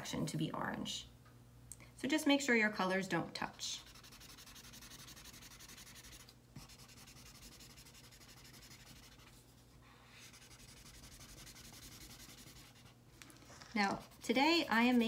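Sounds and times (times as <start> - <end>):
marker scribbling on paper: 3.8 - 9.4, 10.0 - 12.9, 13.8 - 15.0.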